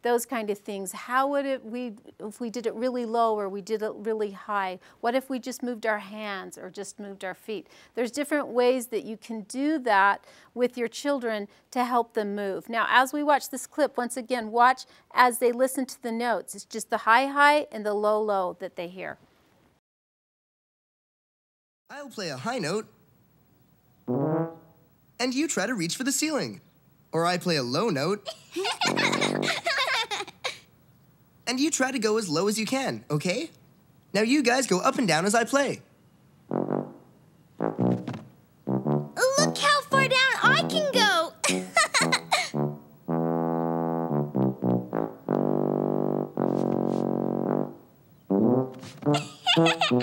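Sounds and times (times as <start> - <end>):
tuba note: 24.1 - 24.9, 28.9 - 29.6, 36.5 - 50.0.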